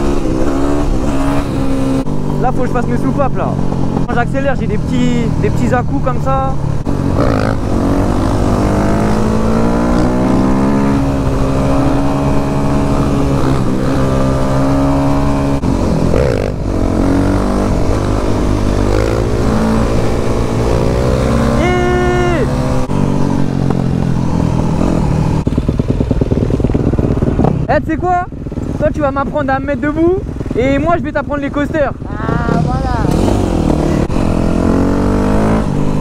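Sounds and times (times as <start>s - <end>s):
dirt bike engine revving: 0.0s - 36.0s
second motorcycle running: 0.0s - 36.0s.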